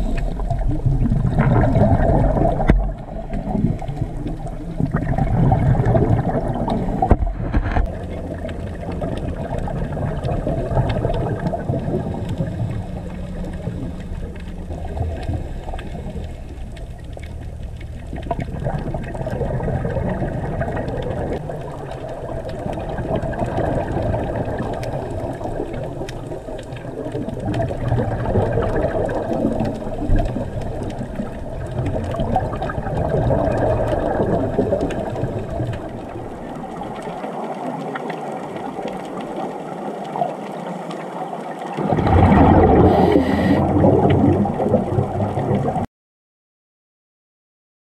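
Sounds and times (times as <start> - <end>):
underwater rumble: 0.0 - 45.9.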